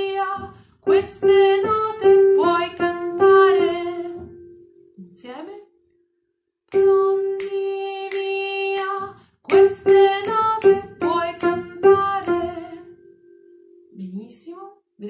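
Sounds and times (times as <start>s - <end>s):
woman singing: 0.0s - 4.4s, 6.7s - 13.0s.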